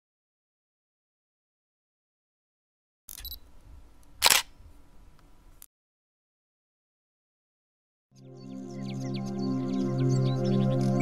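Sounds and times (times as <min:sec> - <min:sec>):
camera shutter click: 0:03.1 - 0:03.4, 0:04.2 - 0:04.6.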